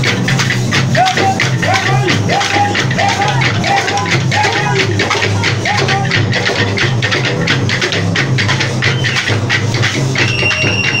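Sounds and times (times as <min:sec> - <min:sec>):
frame drums beating: 0:00.0 - 0:11.0
wooden clappers clacking: 0:00.0 - 0:11.0
long steady whistle: 0:10.2 - 0:11.0.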